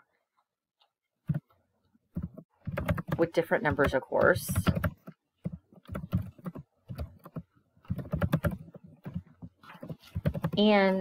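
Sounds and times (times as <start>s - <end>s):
computer keyboard typing: 2.1s - 10.8s.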